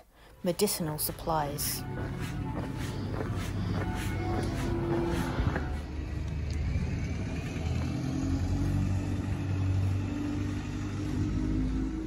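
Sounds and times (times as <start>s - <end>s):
vehicle engine rumbling: 1.7s - 12.0s.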